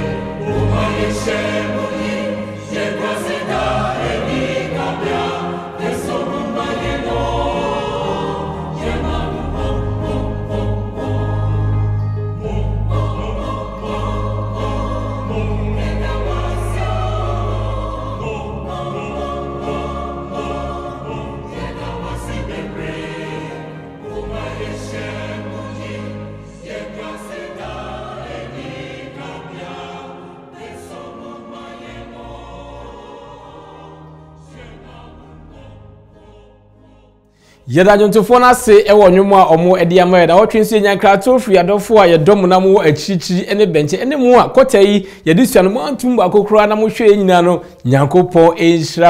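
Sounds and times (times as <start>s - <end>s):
mixed choir singing gospel: 0.0s - 47.2s.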